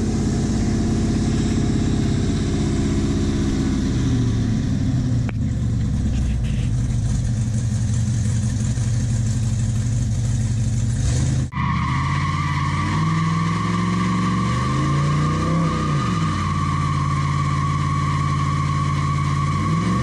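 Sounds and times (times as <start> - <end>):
loud engine running: 0.0 - 11.5.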